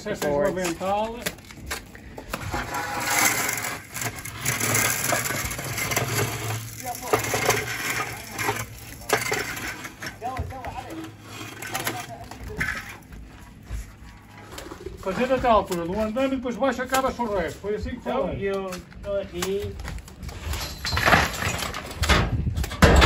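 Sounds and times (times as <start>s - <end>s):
workers talking: 0.0s - 21.2s
trowel scraping wet cement: 2.4s - 13.0s.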